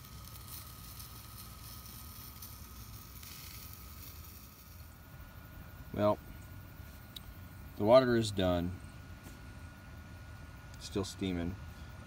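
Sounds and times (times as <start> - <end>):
thin high whine: 0.0 - 12.0
wood fire burning in a stove: 0.0 - 12.0.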